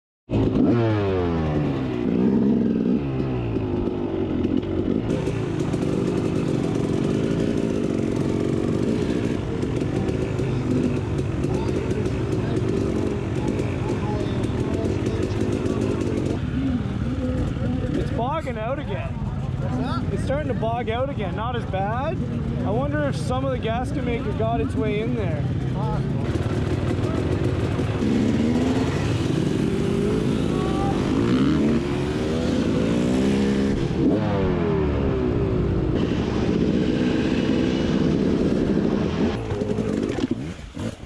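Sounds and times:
dirt bike engine revving: 0.3s - 41.0s
other dirt bike engines: 0.3s - 41.0s.

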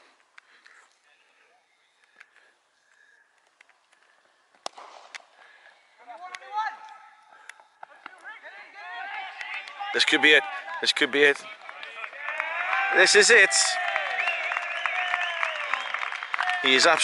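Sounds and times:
cricket bat striking ball: 4.6s - 5.2s.

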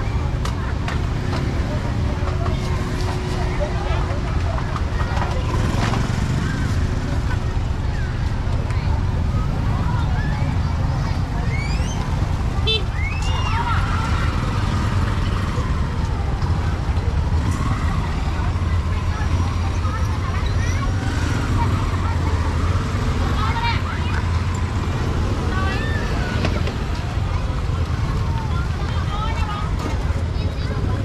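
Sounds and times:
passers-by talking: 0.0s - 31.0s
road traffic rumble: 0.0s - 31.0s.

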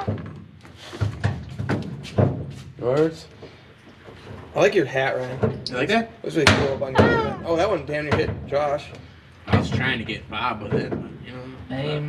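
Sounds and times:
man saying ah: 7.0s - 7.8s.

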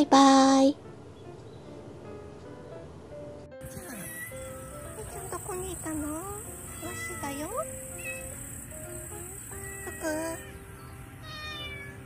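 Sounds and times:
background music: 0.0s - 12.0s
cat meowing: 3.6s - 10.6s, 11.2s - 12.0s.

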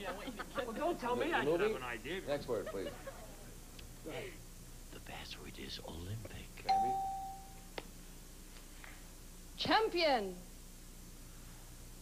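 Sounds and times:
electronic chime tone: 6.7s - 7.6s.

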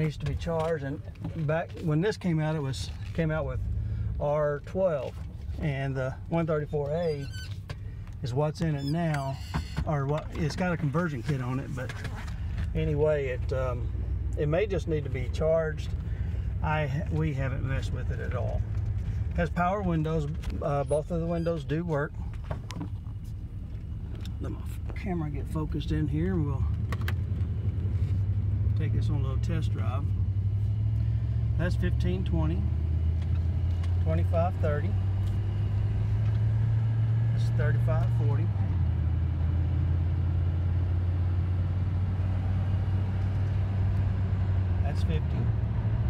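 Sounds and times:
engine and road drone in cab: 0.0s - 46.0s.

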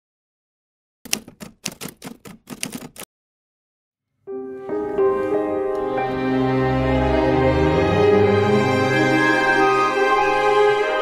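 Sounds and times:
typewriter keys clacking: 1.1s - 3.1s.

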